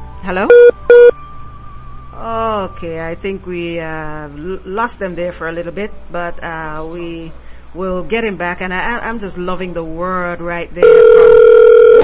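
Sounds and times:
short electronic beeps: 0.5 - 1.2.

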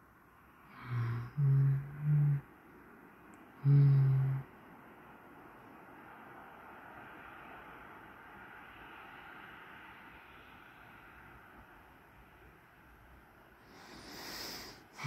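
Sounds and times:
faint background noise: 0.0 - 15.0
person humming: 0.7 - 2.4, 3.6 - 4.5.

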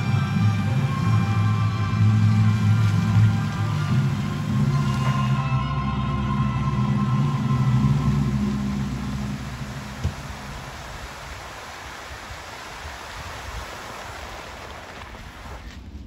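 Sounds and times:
music with held low chord: 0.0 - 10.6
fountain water rushing: 0.0 - 16.0.

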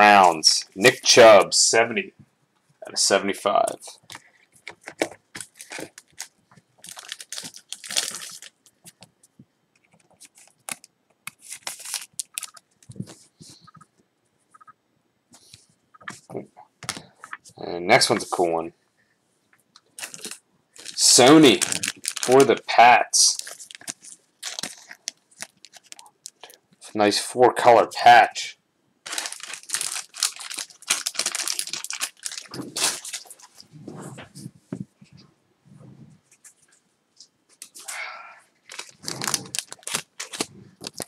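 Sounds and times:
crinkling plastic rustles: 3.6 - 9.1, 9.8 - 13.8, 19.8 - 26.9, 29.0 - 33.7, 38.6 - 41.0.

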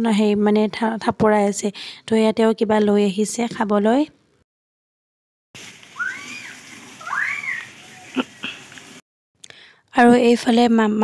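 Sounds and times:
garden hose spraying water: 5.6 - 9.0
short high rising and falling calls: 5.8 - 9.0.

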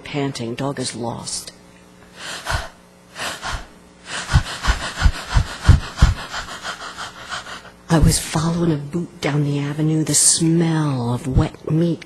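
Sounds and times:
person panting: 2.1 - 7.8.

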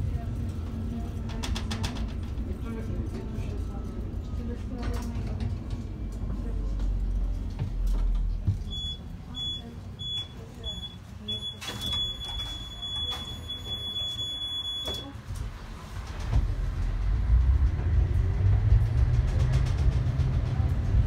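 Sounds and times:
tram rumble: 0.0 - 21.0
high warning beep: 8.7 - 15.1.

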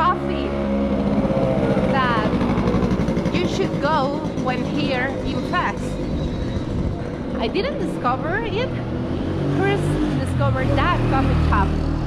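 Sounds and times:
woman speaking: 0.0 - 0.6, 1.8 - 2.4, 3.4 - 6.2, 7.3 - 8.9, 9.6 - 11.8
vehicle engine droning: 0.0 - 12.0.

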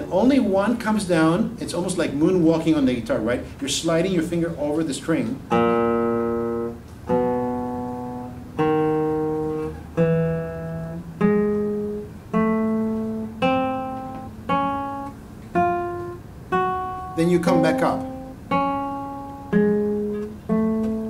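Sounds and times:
classical guitar plucked slowly: 5.5 - 21.0.

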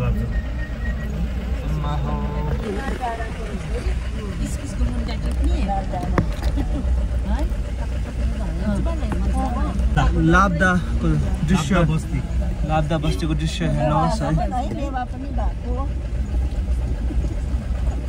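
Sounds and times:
car engine and tyres drone: 0.0 - 18.0
quiet voices talking: 0.0 - 18.0.

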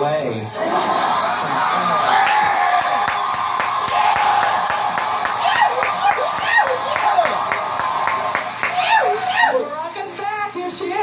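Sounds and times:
audience laughing and whooping: 0.5 - 9.8
audience clapping: 1.0 - 9.7.

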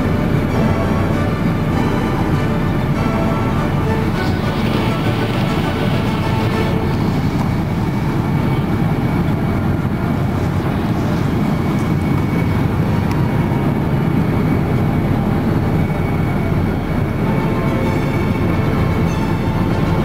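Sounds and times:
airliner cabin engine rush: 0.0 - 20.0.

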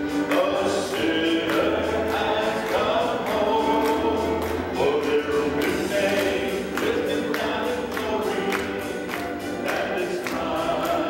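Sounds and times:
congregation singing a hymn: 0.0 - 11.0
man singing into a microphone: 0.2 - 8.9.

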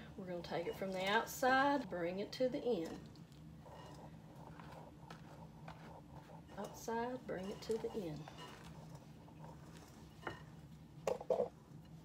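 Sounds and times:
low steady hum: 0.0 - 12.0
spatula folding batter in bowl: 2.4 - 12.0.

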